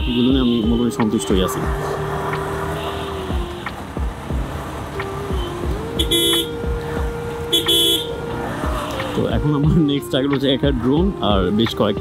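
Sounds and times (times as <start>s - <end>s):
horn toots: 5.3s - 6.6s, 7.5s - 8.2s.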